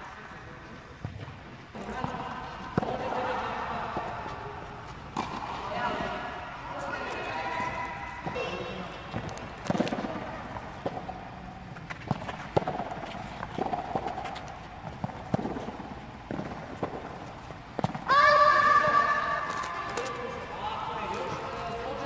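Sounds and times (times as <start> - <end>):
tennis ball hit and bouncing: 1.9 - 6.4, 9.1 - 18.1.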